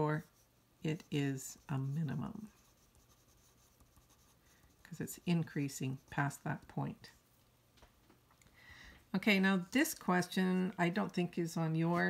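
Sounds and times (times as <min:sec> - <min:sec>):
pencil scratching on paper: 0:00.0 - 0:07.1.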